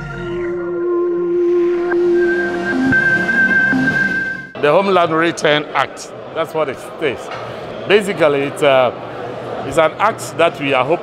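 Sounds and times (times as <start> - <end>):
electronic intro music: 0.0 - 4.6.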